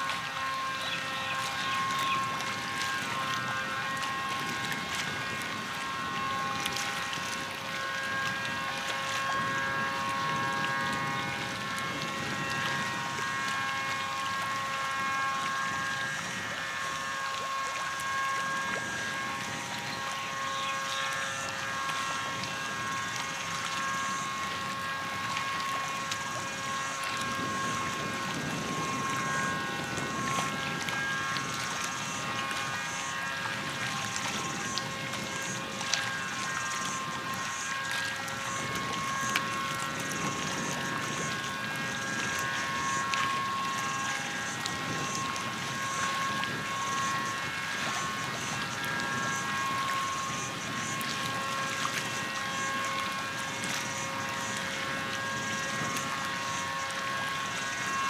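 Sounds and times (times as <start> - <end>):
held steady tones: 0.0 - 58.0
water splashing against shore: 0.0 - 58.0
wind: 0.0 - 58.0.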